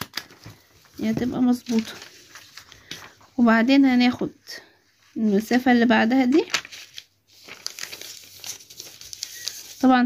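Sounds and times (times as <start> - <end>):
paper rustling and crinkling: 0.0 - 3.6, 5.1 - 10.0.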